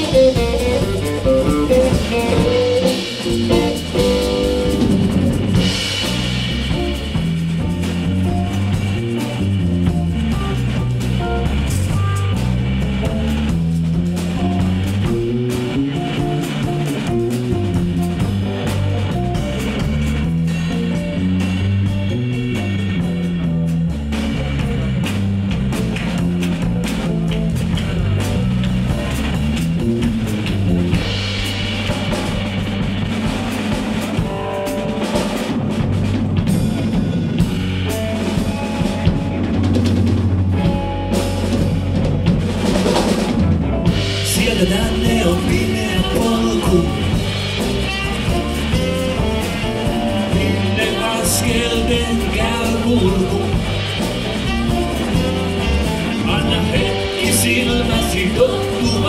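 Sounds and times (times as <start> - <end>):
bass line: 0.0 - 59.0
drum kit beat: 0.0 - 59.0
electric guitar: 0.0 - 59.0.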